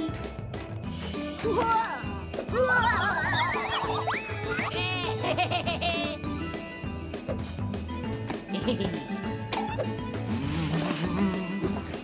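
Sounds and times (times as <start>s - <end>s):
cartoon music: 1.4s - 6.9s, 8.4s - 12.0s.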